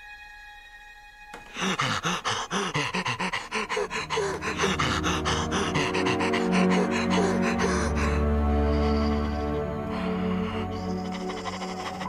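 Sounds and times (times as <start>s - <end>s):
tense music with held notes: 0.0s - 12.0s
man panting heavily: 1.4s - 12.0s.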